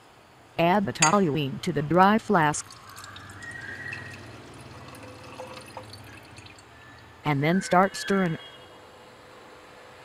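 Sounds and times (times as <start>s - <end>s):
liquid trickling into glass flask: 2.5s - 7.1s.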